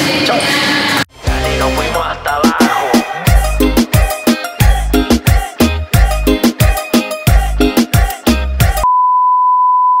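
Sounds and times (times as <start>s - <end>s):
music with heavy bass beat: 1.1s - 8.9s.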